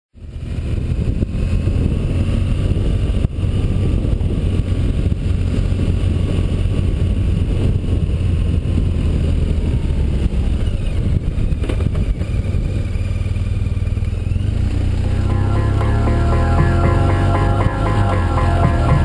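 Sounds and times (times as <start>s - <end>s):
wind rumble on microphone: 0.2s - 15.3s
motorcycle engine running: 11.9s - 19.0s.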